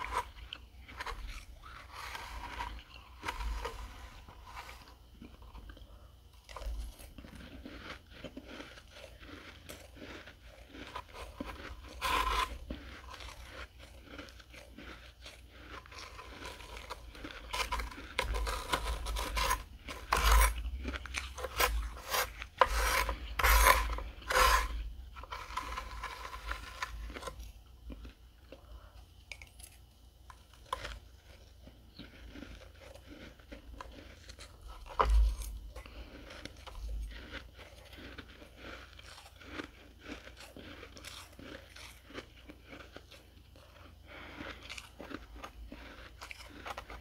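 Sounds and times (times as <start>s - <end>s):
metal spoon scraping frost: 0.0s - 5.0s, 8.3s - 27.5s.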